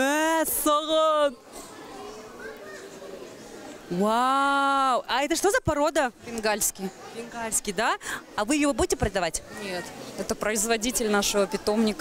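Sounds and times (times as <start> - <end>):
crowd chatter with children's voices: 0.0 - 12.0.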